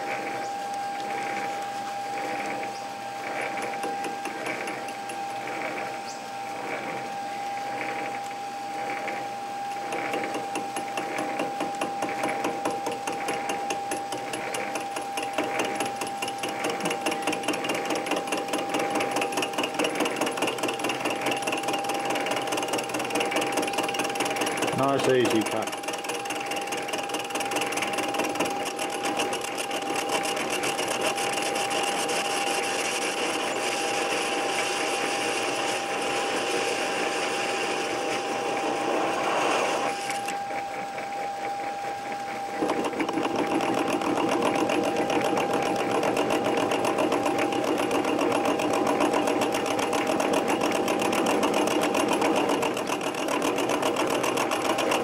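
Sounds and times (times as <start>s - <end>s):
metal lathe whine: 0.0s - 55.0s
cutting tool scraping metal: 1.2s - 8.3s, 8.9s - 40.5s, 42.4s - 55.0s.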